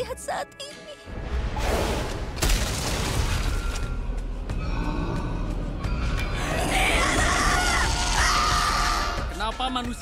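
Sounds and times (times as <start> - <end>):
loud background music: 3.9 - 10.0
wavering demon scream: 6.4 - 9.3.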